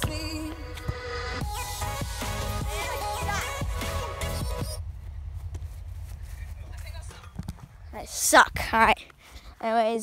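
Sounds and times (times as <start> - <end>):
steady low rumble: 0.0 - 8.8
footsteps on asphalt: 4.8 - 8.0.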